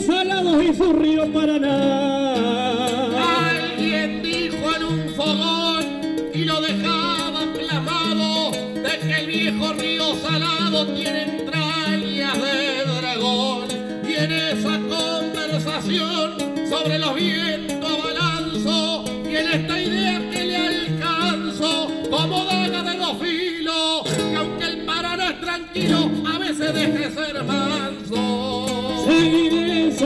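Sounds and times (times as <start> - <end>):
acoustic guitars playing: 0.0 - 30.0.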